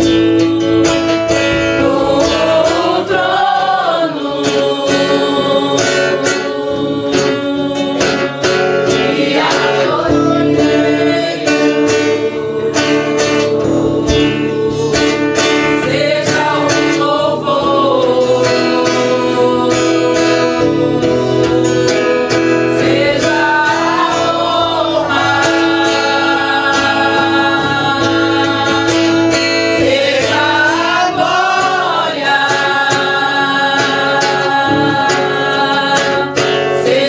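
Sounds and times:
acoustic guitar strumming: 0:00.0 - 0:37.0
woman singing a hymn: 0:00.0 - 0:37.0.

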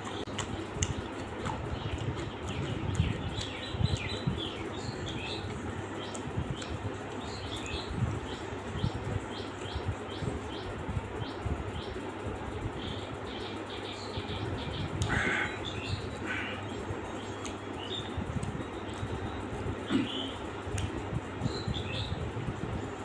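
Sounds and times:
chewing and mouth sounds: 0:00.0 - 0:07.7, 0:16.7 - 0:19.2
small birds chirping: 0:00.0 - 0:23.0.

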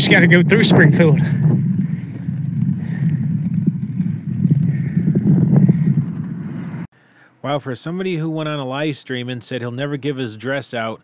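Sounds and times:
wind buffeting microphone: 0:00.0 - 0:06.9.

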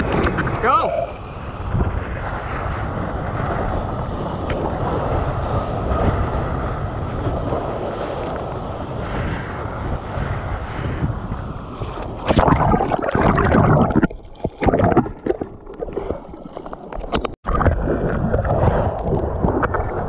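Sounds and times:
wind on camera: 0:00.0 - 0:20.0
water rushing: 0:12.0 - 0:20.0.

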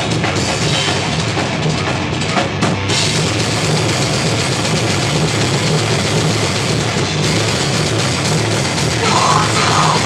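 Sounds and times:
distorted electric guitars and bass: 0:00.0 - 0:10.0.

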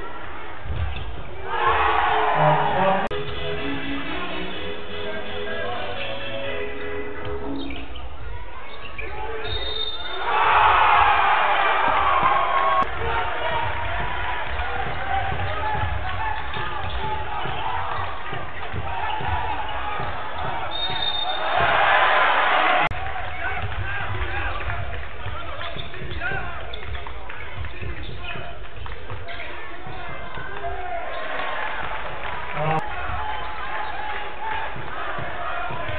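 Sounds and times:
crowd noise: 0:00.0 - 0:35.9
basketball bouncing on court: 0:12.2 - 0:22.0, 0:23.1 - 0:30.6, 0:34.6 - 0:35.9.

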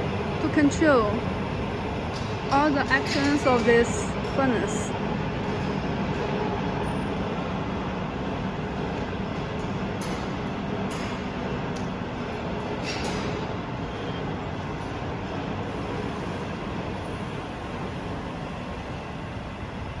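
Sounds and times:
factory machinery rumble: 0:00.0 - 0:20.0.

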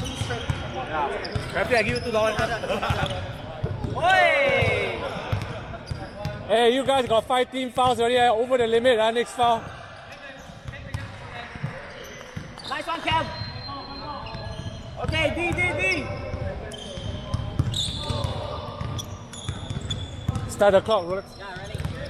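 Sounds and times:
players calling out: 0:00.0 - 0:07.2
basketball bouncing: 0:03.6 - 0:07.1, 0:21.6 - 0:22.0.

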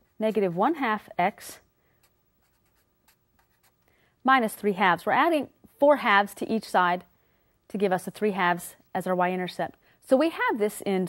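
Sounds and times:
marker scratching on paper: 0:00.2 - 0:00.9, 0:02.0 - 0:03.8.

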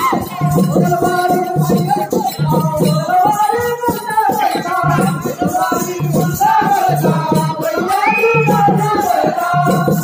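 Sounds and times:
rattling percussion: 0:00.0 - 0:10.0.

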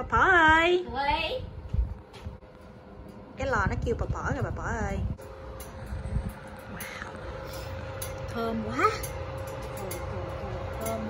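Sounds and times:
oven humming: 0:00.0 - 0:11.0.

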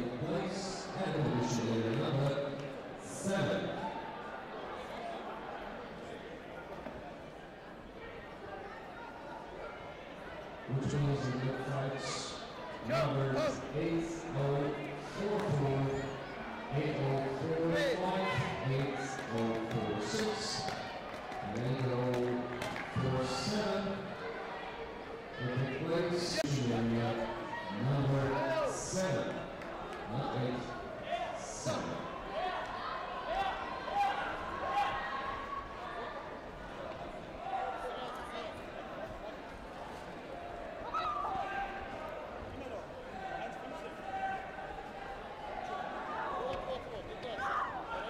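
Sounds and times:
voices shouting in a hall: 0:00.0 - 0:48.0.

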